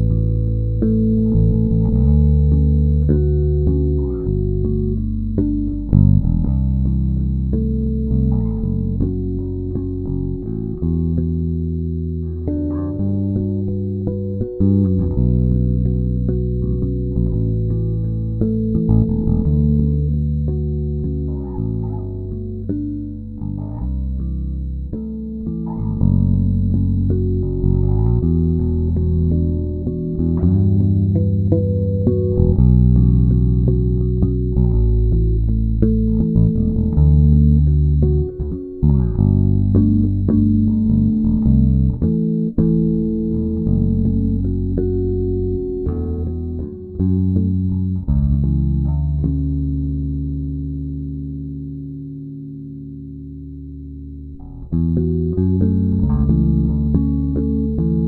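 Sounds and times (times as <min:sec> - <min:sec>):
electric bass guitar fingerstyle: 0:00.0 - 0:58.0.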